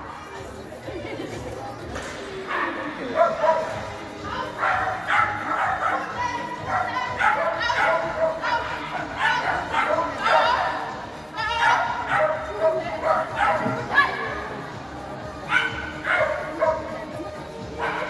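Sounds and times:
people talking: 0.0s - 18.0s.

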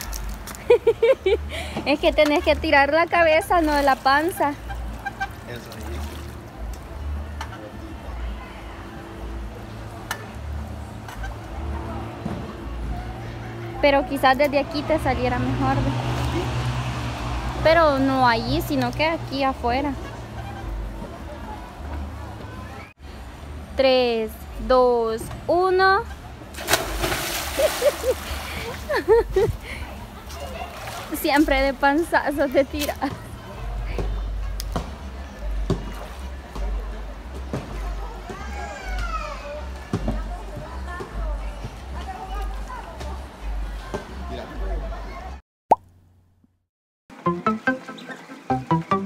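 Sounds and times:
water splashing and dripping: 0.0s - 0.8s, 2.0s - 7.0s, 26.5s - 29.5s, 30.3s - 33.0s.

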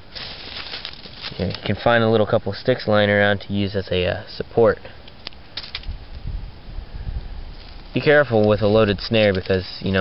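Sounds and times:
sticks clicking in dry leaves: 0.1s - 1.8s, 5.1s - 6.2s, 7.6s - 10.0s
low rumble of handling: 4.8s - 10.0s.

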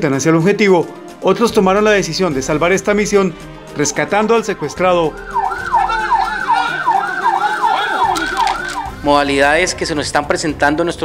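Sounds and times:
siren yelping: 4.2s - 9.1s.

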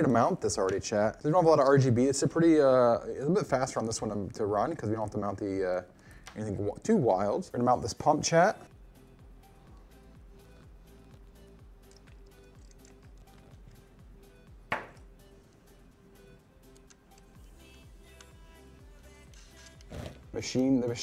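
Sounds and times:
music with steady beat: 8.7s - 21.0s.

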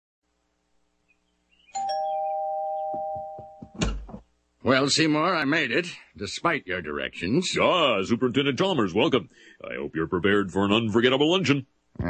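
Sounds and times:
two-note doorbell chime: 1.8s - 3.8s.

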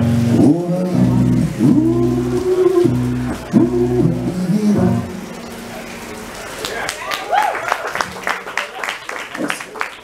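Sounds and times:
acoustic guitar: 0.0s - 7.3s.

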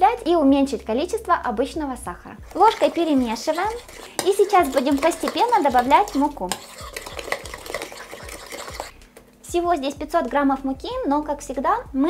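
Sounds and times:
spoon stirring batter: 2.4s - 9.1s
spoon clicking against bowl: 3.6s - 8.9s.

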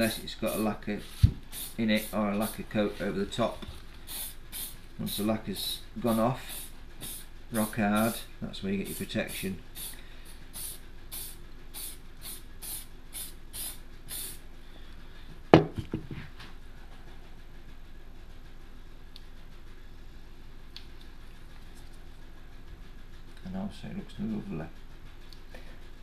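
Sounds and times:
spray can hissing: 0.0s - 2.6s, 4.0s - 8.3s, 8.9s - 14.4s.

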